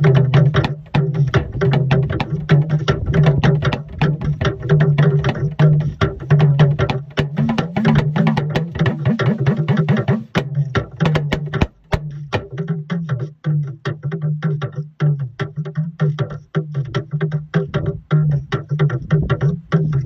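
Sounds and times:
talking drum struck with stick: 0.0 - 12.9.

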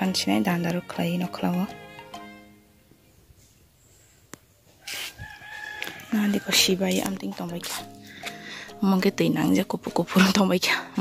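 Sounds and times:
rooster crowing: 4.8 - 7.0.

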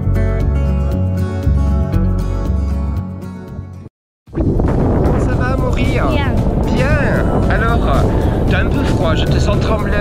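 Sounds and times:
wind buffeting microphone: 4.3 - 10.0.

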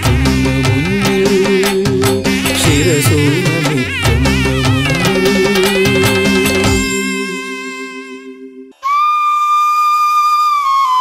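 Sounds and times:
low held instrumental note: 0.6 - 8.7
flute playing long high note: 2.2 - 11.0.

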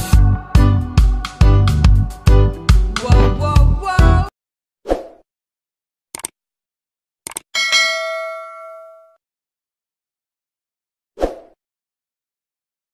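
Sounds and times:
short clicks: 6.2 - 6.4, 7.2 - 7.5
bell-like notification ding: 7.6 - 9.2.

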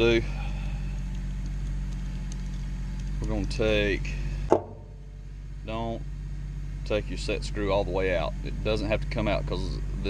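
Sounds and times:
man speaking: 0.0 - 0.4, 5.7 - 6.0, 6.9 - 10.0
steady low hum: 0.0 - 10.0.

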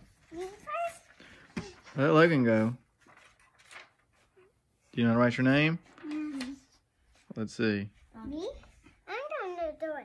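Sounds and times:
child's high-pitched voice: 0.2 - 1.2, 6.0 - 6.7, 8.1 - 10.0.

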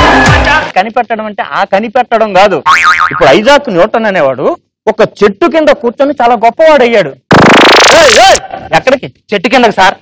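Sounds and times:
comic rising pitch sweep: 7.3 - 8.4.

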